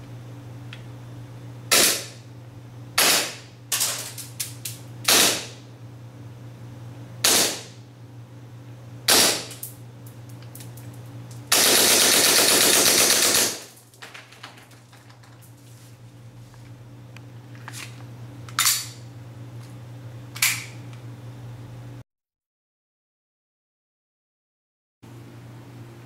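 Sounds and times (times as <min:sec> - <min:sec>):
airsoft pistol shots: 0:01.7 - 0:02.2, 0:03.0 - 0:03.4, 0:05.1 - 0:05.6, 0:07.2 - 0:07.8, 0:09.1 - 0:09.6, 0:11.5 - 0:13.7
full-auto airsoft burst: 0:01.7 - 0:02.2, 0:03.0 - 0:03.4, 0:05.1 - 0:05.6, 0:07.2 - 0:07.8, 0:09.1 - 0:09.5, 0:11.5 - 0:13.8.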